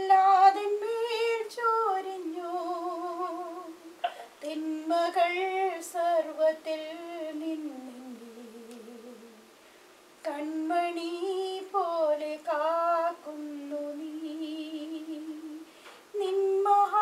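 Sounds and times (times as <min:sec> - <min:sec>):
woman singing a devotional song: 0:00.0 - 0:09.5, 0:10.2 - 0:17.0.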